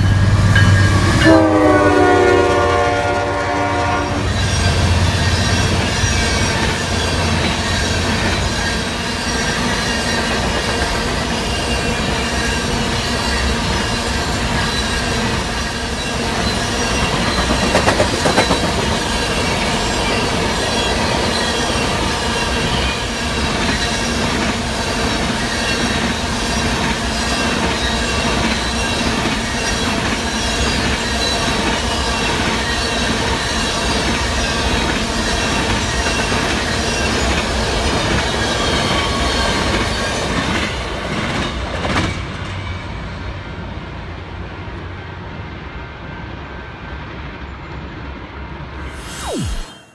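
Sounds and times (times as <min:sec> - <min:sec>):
wheels squealing on rails: 0:00.0 - 0:43.4
freight train rumble: 0:00.0 - 0:48.9
train wheels clicking over rail joints: 0:16.2 - 0:20.4.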